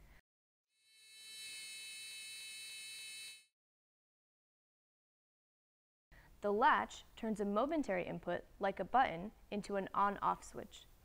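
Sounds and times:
high-pitched electronic buzz: 0.8s - 3.5s.

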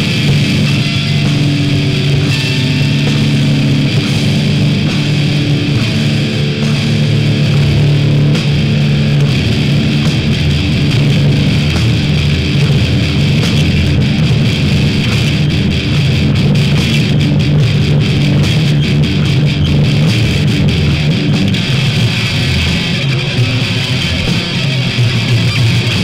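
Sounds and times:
bass guitar: 0.0s - 26.0s
distorted electric guitars: 0.0s - 26.0s.

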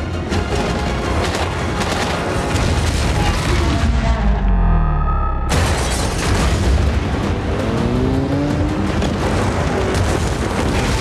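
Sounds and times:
dramatic film score: 0.0s - 11.0s.

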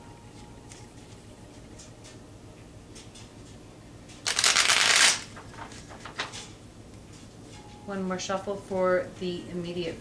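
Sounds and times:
cards being shuffled: 4.2s - 6.3s.

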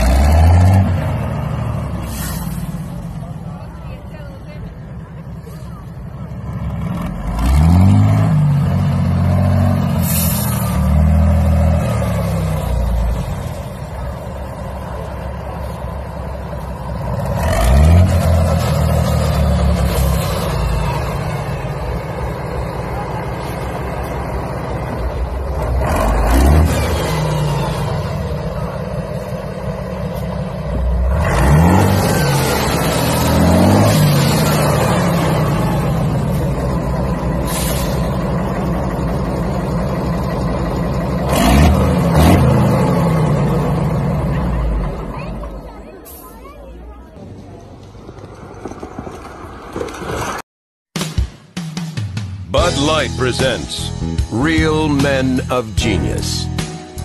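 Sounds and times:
tractor engine revving: 0.0s - 46.2s, 52.4s - 57.0s.

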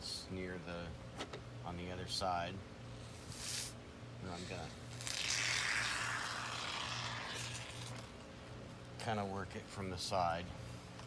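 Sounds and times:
aerosol foam can hissing: 5.0s - 8.0s.

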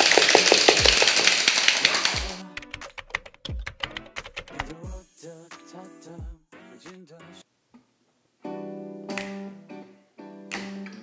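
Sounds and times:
plastic hand-clapper rattle: 0.0s - 2.2s
fast clapping: 0.0s - 4.8s
music with deep kick drum: 4.8s - 5.1s, 6.2s - 6.4s.

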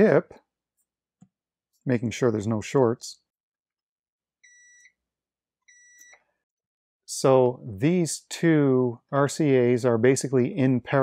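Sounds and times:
multimeter high-pitched beeps: 4.4s - 5.0s, 5.7s - 6.2s.

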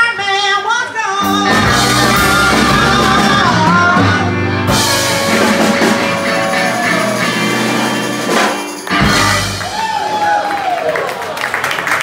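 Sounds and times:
woman singing: 0.0s - 4.4s
drum kit: 1.2s - 10.2s
electric guitars: 1.2s - 10.3s.

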